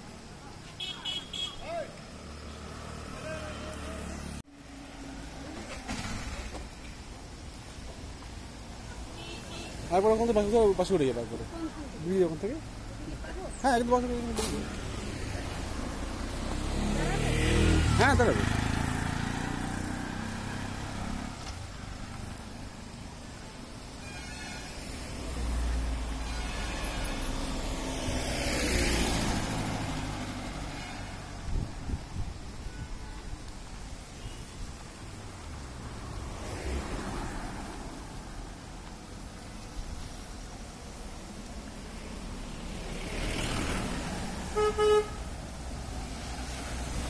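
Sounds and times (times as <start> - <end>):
engine hum and tyre noise: 0.0 - 47.0
vehicles driving past: 0.0 - 47.0.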